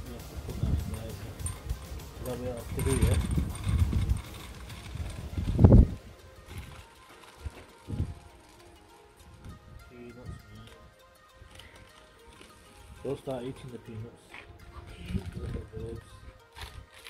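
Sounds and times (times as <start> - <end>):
faint background music: 0.0 - 17.0
microphone handling rumble: 2.6 - 6.0.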